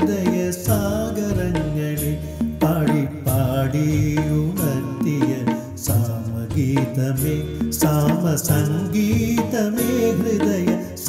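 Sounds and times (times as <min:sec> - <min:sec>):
instrumental accompaniment: 0:00.0 - 0:11.0
man singing film song: 0:00.0 - 0:11.0.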